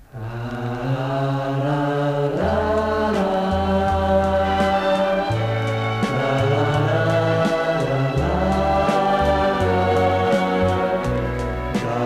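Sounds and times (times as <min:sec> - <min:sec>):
band music from vinyl record: 0:02.4 - 0:12.0.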